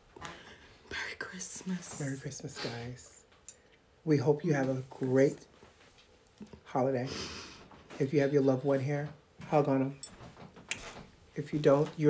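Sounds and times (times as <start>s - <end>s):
person whispering: 0.9s - 3.2s.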